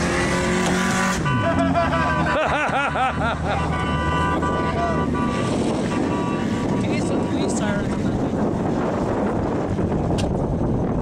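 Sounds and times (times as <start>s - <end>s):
distant car engines racing: 0.0s - 11.0s
wind buffeting microphone: 3.8s - 11.0s.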